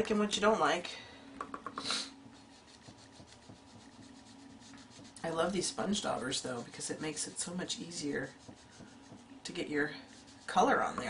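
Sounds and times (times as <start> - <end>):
sponge dauber dabbing soft taps: 1.4 - 11.0.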